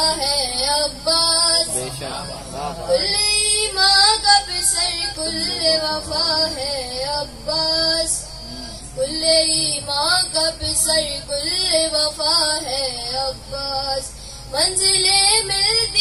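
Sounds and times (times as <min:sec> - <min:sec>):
boy singing into a microphone: 0:00.0 - 0:02.1, 0:02.7 - 0:16.0.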